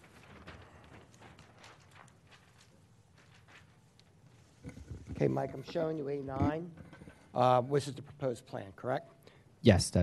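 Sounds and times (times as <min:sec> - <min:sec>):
paper sheets rustling: 0:00.0 - 0:04.6.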